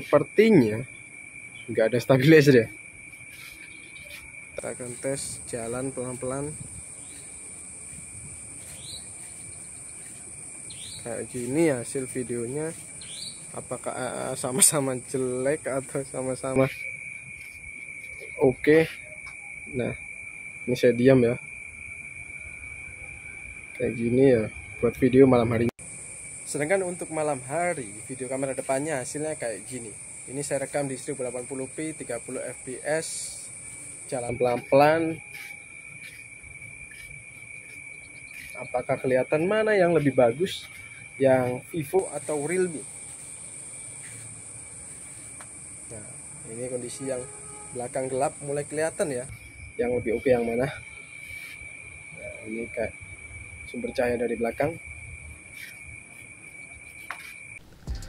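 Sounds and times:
night insects trilling: 0.0 - 58.0
person speaking: 4.6 - 6.7, 11.0 - 12.9, 13.5 - 16.9, 34.1 - 35.6, 38.4 - 42.9, 45.9 - 50.8.

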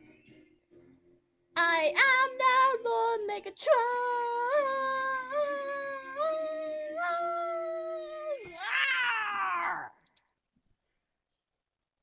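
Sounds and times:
meow-like wail: 8.5 - 9.9.

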